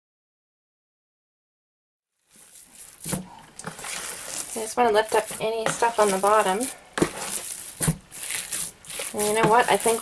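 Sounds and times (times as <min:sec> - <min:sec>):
wet clay squelching: 0:02.2 - 0:10.0.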